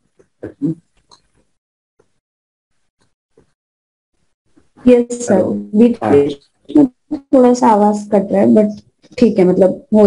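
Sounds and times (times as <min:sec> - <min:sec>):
clipped vocal sound: 0:04.9 - 0:07.3.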